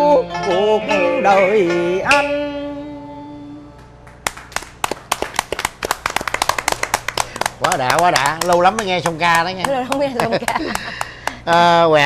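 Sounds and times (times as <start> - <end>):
people clapping: 3.8 - 11.8.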